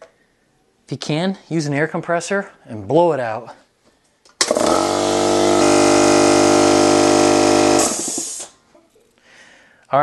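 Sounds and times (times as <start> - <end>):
electric air compressor running: 4.4 - 8.6.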